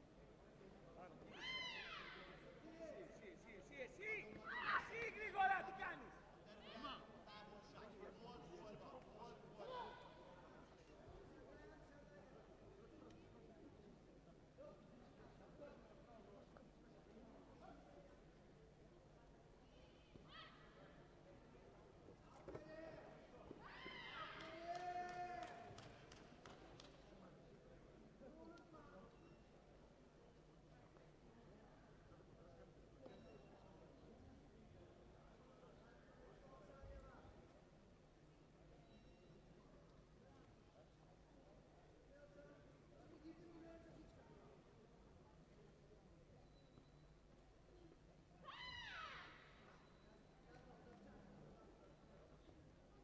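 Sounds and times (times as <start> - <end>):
faint sports hall background: 0.0 - 53.0.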